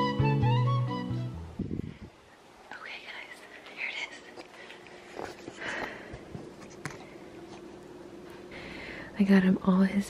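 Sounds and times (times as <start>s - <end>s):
woman whispering: 2.7s - 4.4s.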